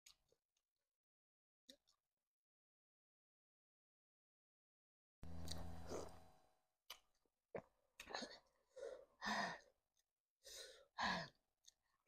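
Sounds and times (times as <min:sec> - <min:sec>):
woman breathing hard and sighing: 0:08.7 - 0:09.8.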